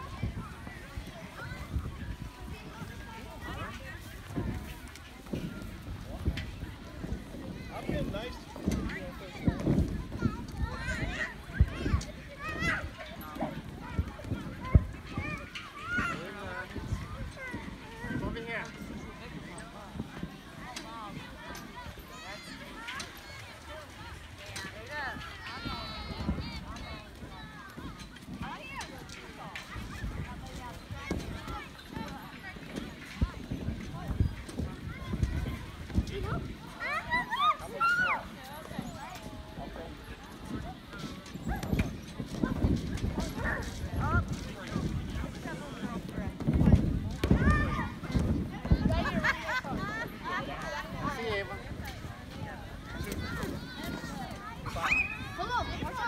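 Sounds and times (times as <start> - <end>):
children's voices: 0.0 - 5.7, 8.6 - 18.2, 20.5 - 39.3, 47.0 - 56.0
feet thumping on inflatable: 40.4 - 56.0.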